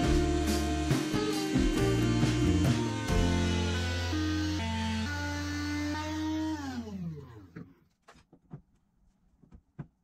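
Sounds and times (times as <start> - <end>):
table saw motor winding down: 0.0 - 7.6.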